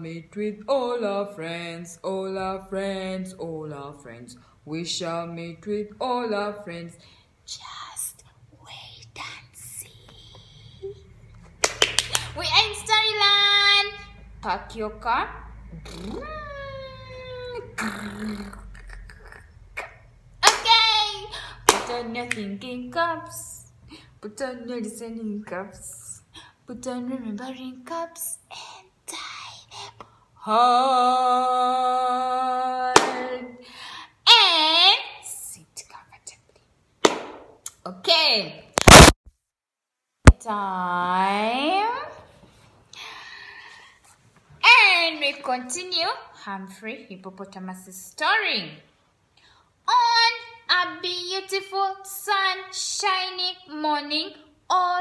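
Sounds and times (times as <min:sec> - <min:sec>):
woman's wordless swooping vocal: 0:14.4 - 0:20.0.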